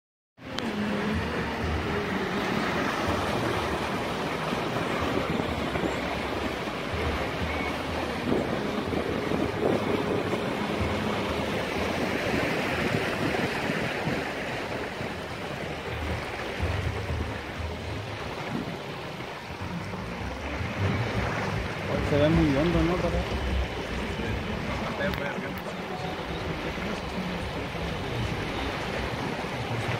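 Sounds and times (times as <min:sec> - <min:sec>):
floodwater rushing and splashing: 0:00.4 - 0:29.9.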